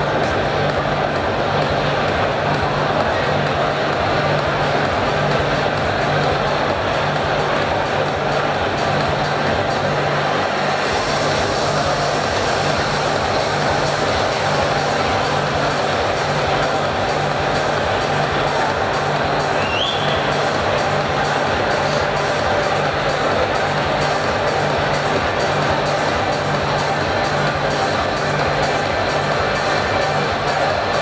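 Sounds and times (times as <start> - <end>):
hall noise: 0.0 - 31.0
music with low beat: 0.0 - 31.0.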